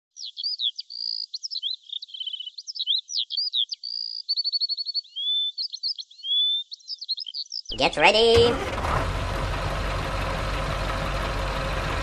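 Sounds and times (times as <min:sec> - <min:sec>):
bird chirping and trilling: 0:00.1 - 0:07.8.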